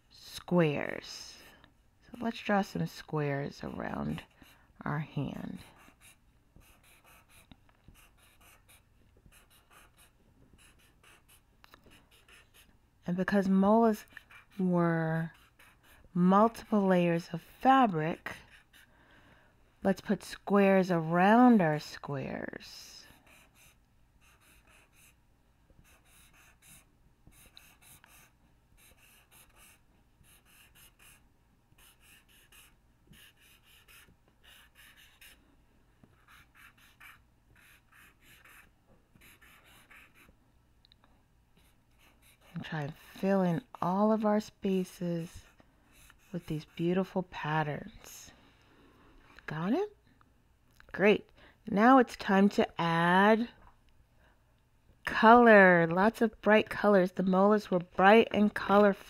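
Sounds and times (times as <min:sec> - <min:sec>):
marker scratching on paper: 0:03.6 - 0:12.7, 0:13.3 - 0:17.2, 0:17.8 - 0:18.9, 0:23.2 - 0:25.2, 0:25.8 - 0:31.2, 0:31.8 - 0:35.4, 0:36.2 - 0:40.4, 0:41.6 - 0:47.2.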